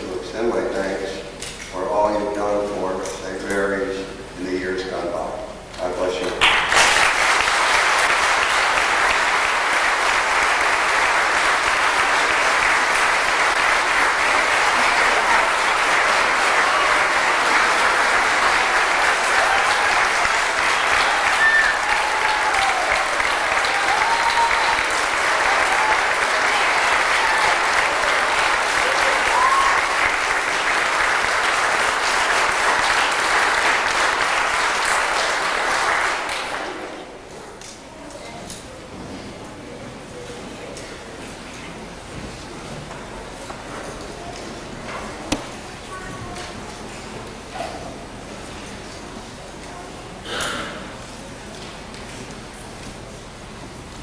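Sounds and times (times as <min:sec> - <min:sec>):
congregation applauding: 0:06.4 - 0:37.1.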